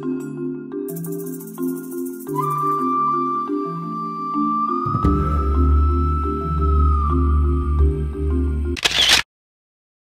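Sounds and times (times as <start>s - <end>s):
background music: 0.0s - 8.8s
camera shutter click: 8.8s - 9.3s.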